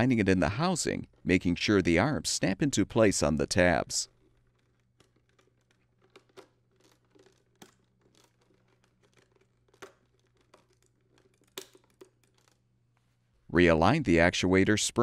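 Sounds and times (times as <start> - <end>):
plastic clicks and rubbing: 4.0 - 13.1.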